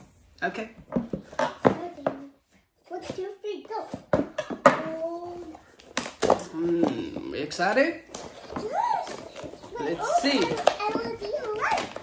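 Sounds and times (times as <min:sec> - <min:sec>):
child's high wordless vocal: 0:08.6 - 0:10.1, 0:10.8 - 0:12.0.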